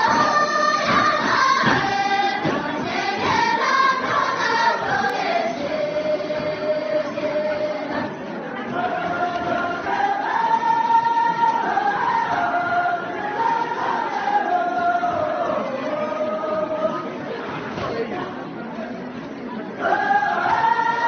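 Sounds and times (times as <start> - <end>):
women singing unaccompanied: 0.0 - 17.4, 19.7 - 21.0.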